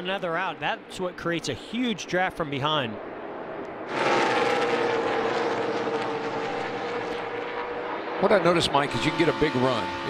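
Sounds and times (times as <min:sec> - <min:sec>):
race car engines passing: 0:00.0 - 0:10.0.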